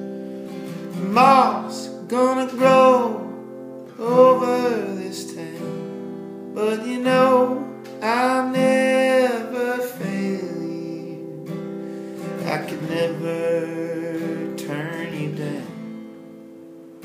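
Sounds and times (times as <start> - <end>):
acoustic guitar strumming: 0.0 - 17.0
man singing: 0.8 - 11.6, 12.2 - 15.9.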